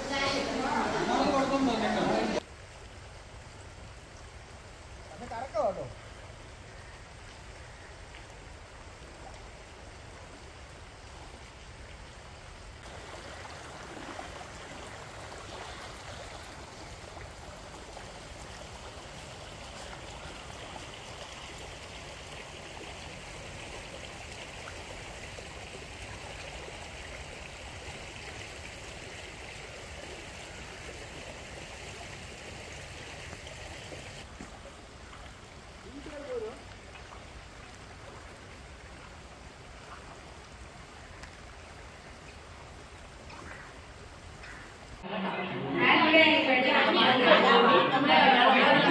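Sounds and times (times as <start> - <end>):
floodwater rushing: 0.0 - 48.9.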